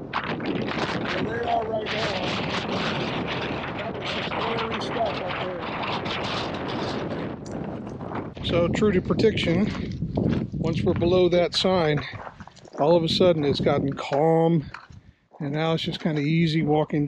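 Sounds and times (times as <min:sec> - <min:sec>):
gusty wind on microphone: 0:00.0 - 0:17.0.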